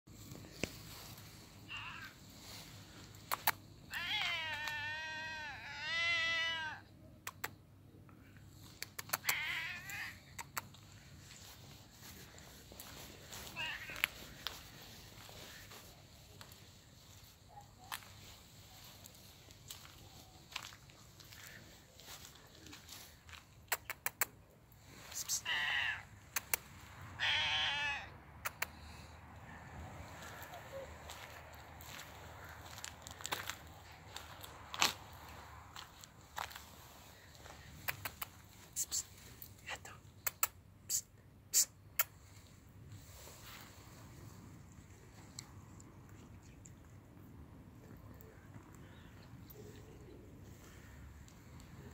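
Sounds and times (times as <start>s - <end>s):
cat meowing: 1.7s - 2.2s, 3.4s - 6.8s, 9.0s - 10.2s, 12.4s - 14.8s, 25.4s - 26.1s, 27.1s - 28.7s.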